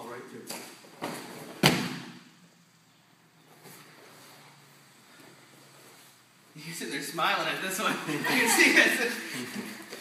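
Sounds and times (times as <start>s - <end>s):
bodies slamming onto mat: 1.0s - 2.2s.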